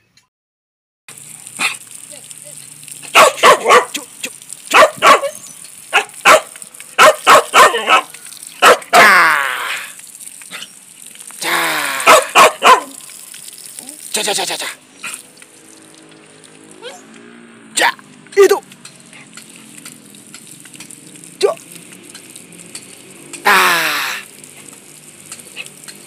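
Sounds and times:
dog barking: 3.0s - 4.1s, 4.7s - 9.1s, 12.0s - 13.0s.

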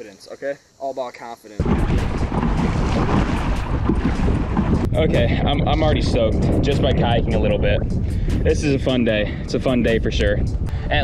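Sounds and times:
waves splashing against kayak: 1.6s - 6.2s
wind buffeting microphone: 1.6s - 11.0s.

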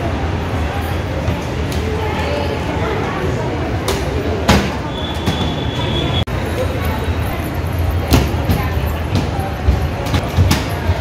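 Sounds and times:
crowd hubbub: 0.0s - 11.0s.

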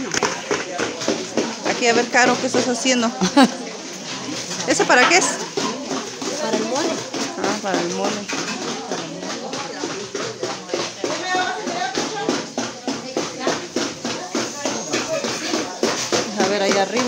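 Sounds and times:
indistinct chatter: 0.0s - 17.0s
sharp taps: 4.7s - 17.0s.

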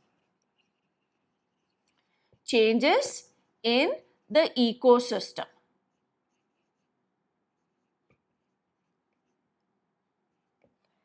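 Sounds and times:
marker squeaking on whiteboard: 0.0s - 2.4s, 5.8s - 10.9s.

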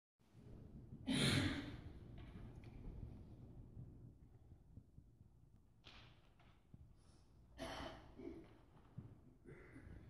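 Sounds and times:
faint room noise: 0.2s - 10.0s.

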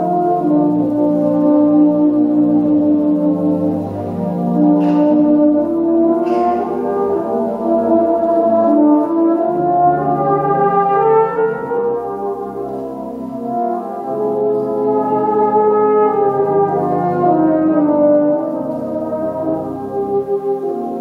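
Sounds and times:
brass band accompaniment: 0.0s - 21.0s
euphonium solo: 0.0s - 21.0s.

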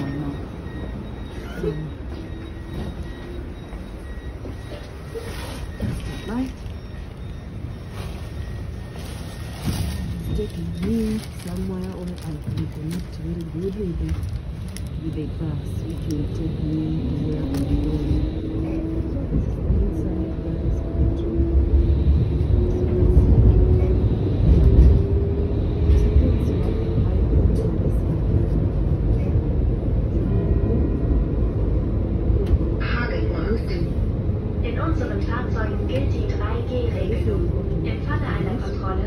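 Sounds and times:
tram cabin rumble and hiss: 0.0s - 39.0s.

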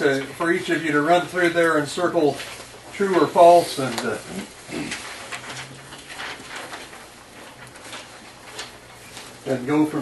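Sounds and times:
paper rustling: 1.4s - 9.8s.

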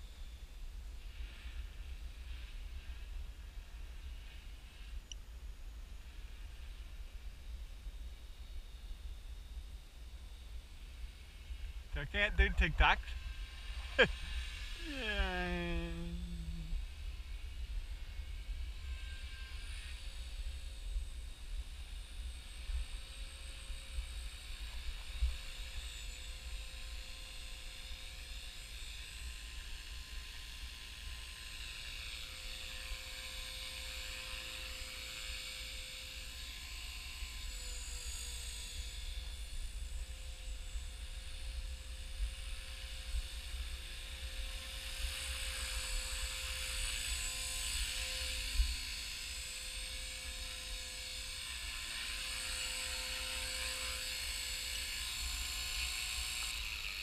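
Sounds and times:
high motor whine: 0.0s - 57.0s
helicopter rotor buzz: 11.9s - 16.8s.

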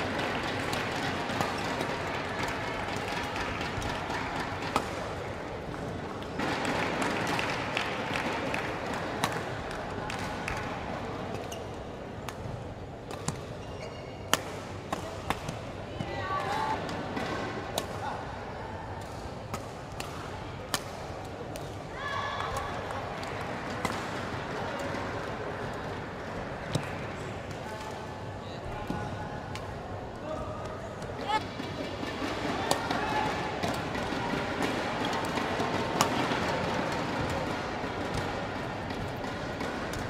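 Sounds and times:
murmur of voices: 14.3s - 40.0s
racket striking shuttlecock: 32.0s - 40.0s.

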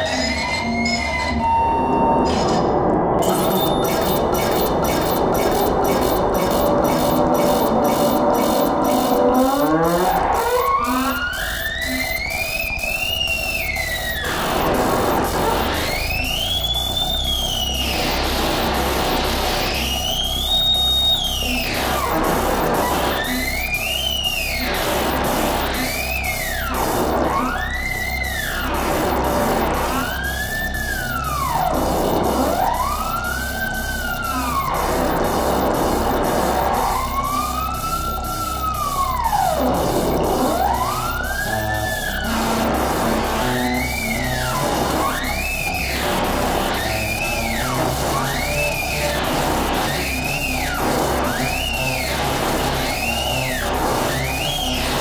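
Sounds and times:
fast high ticking pattern: 3.2s - 55.0s
siren-like synth tones sweeping: 3.2s - 55.0s
low pulsing bass: 3.8s - 55.0s.

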